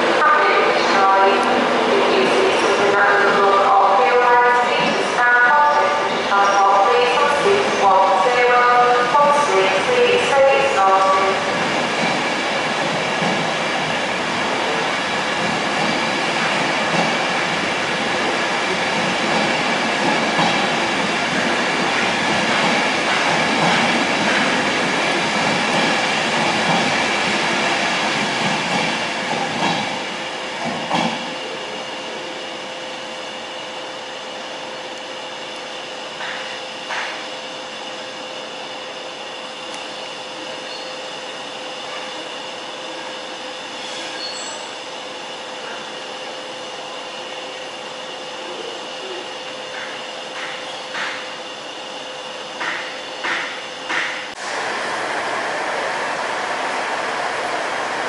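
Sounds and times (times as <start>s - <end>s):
train wheels rushing on rail: 0.0s - 58.0s.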